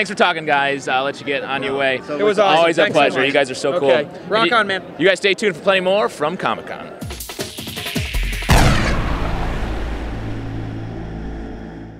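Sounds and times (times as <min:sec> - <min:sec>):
rushing whoosh: 0:07.5 - 0:11.9
low rumble: 0:08.2 - 0:11.9.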